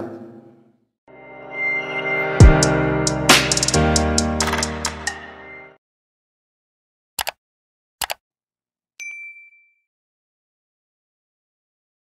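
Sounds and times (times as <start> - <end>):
bell-like notification chime: 9.0 - 9.9.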